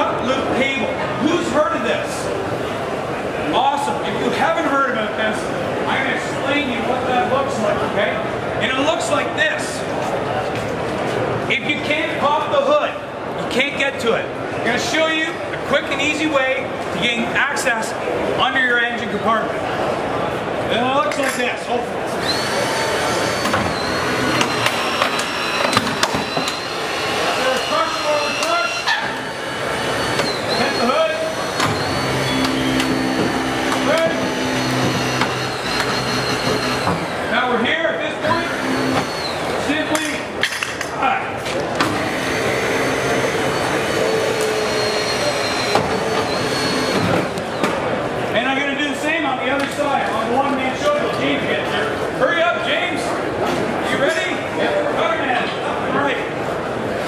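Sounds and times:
crowd murmuring: 21.8 - 40.4
hydraulic tool motor whining: 22.1 - 37.5, 38.2 - 40.0, 41.8 - 47.7
tool knocks and clicks: 24.3 - 26.6, 32.4 - 37.1.

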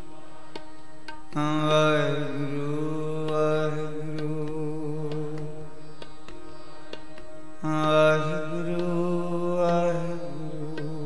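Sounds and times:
harmonium drone: 0.0 - 11.0
tabla strokes: 0.0 - 11.0.

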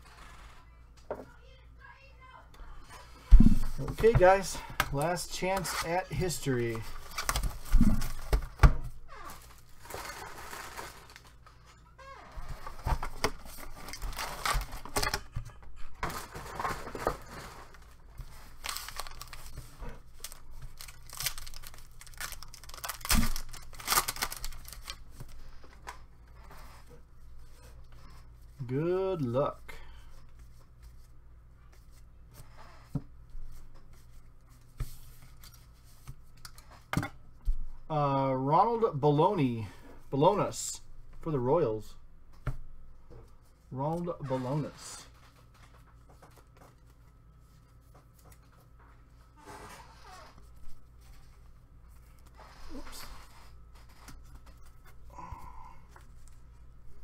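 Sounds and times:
foil wrapper tearing and crinkling: 18.4 - 25.4.

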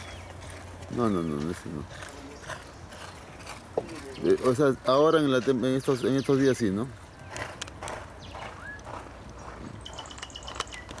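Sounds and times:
hooves galloping: 0.0 - 11.0.

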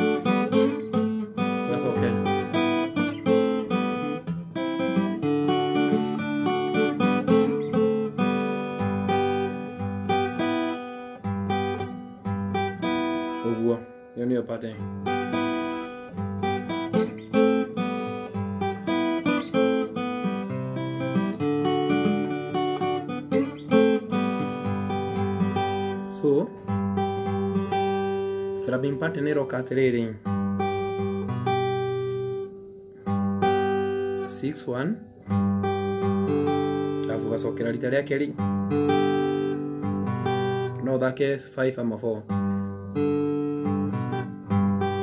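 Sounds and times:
acoustic guitar picking: 0.0 - 45.0.

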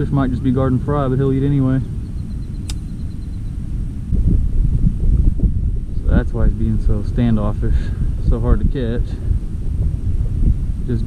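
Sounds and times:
wind rumbling on microphone: 0.0 - 11.0
sharp click: 2.6 - 3.0.

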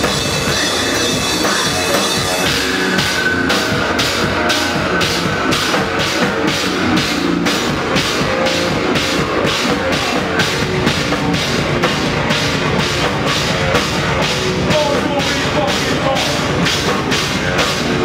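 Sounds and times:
distorted guitars: 0.0 - 18.0
drum and cymbal hits: 0.0 - 18.0
hardcore band playing live: 0.0 - 18.0.

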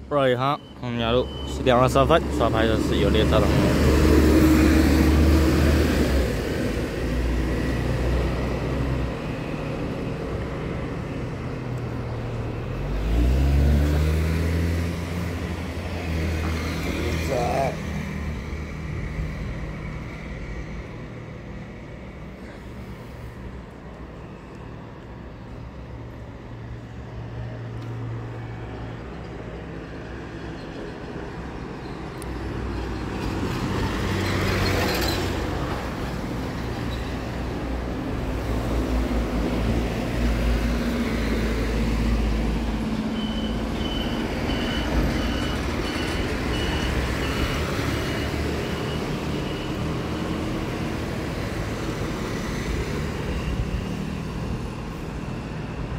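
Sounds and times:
vehicle engines running: 1.0 - 27.1
engine accelerating: 12.5 - 18.0.

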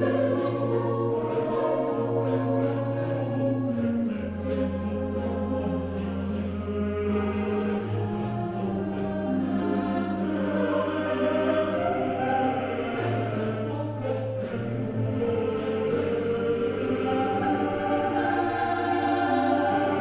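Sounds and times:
choir holding slow chords: 0.0 - 20.0.

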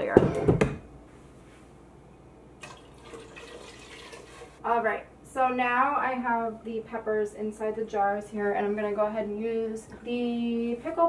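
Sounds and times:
liquid pouring into a metal pot: 2.6 - 4.6.

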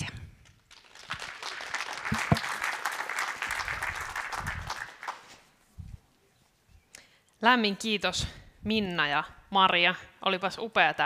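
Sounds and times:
audience applauding: 0.7 - 5.5.

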